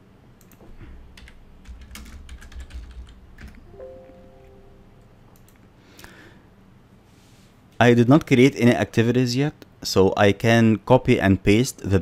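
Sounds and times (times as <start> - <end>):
computer keyboard typing: 0.4 - 3.7.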